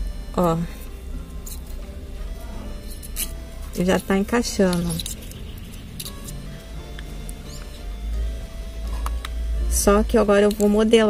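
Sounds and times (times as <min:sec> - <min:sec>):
soft background music: 0:00.0 - 0:11.0
stopper squeaking in bottle neck: 0:02.6 - 0:07.9.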